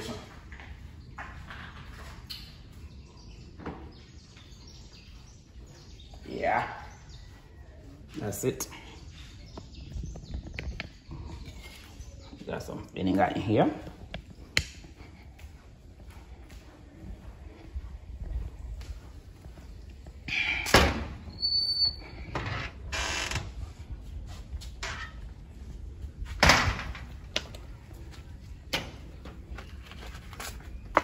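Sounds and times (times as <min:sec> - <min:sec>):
footsteps: 0:00.0 - 0:20.4
door creaking and knocking: 0:21.8 - 0:23.6.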